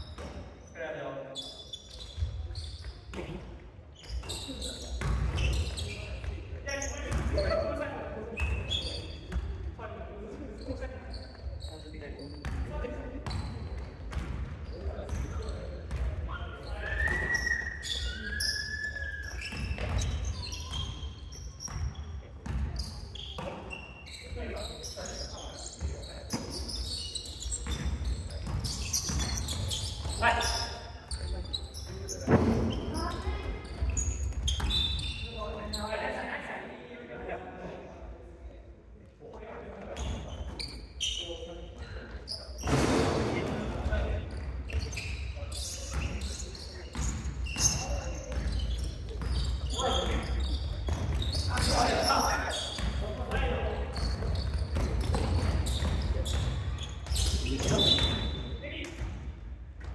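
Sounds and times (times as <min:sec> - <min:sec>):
shoes squeaking: 0:00.0 - 0:09.4, 0:14.7 - 0:36.0, 0:39.9 - 0:42.8, 0:43.4 - 0:58.8.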